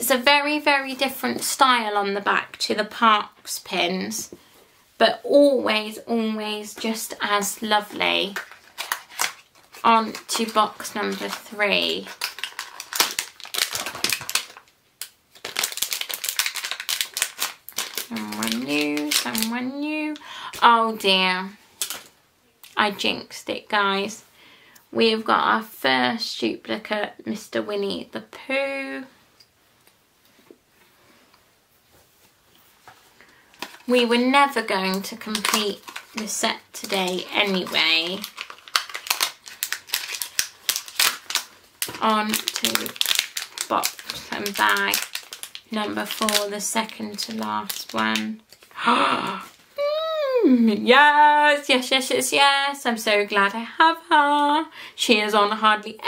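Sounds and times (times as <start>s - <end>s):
packaging crinkling: 8.2s - 19.7s, 21.8s - 22.8s, 33.5s - 34.0s, 34.8s - 48.8s.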